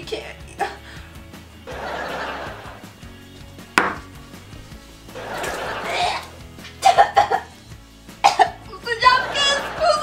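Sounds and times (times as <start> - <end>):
glass banged on wooden table: 3.8 - 4.1.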